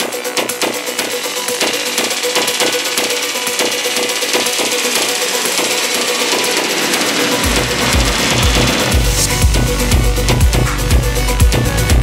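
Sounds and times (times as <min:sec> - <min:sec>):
afro house dj mix: 0:00.0 - 0:11.0.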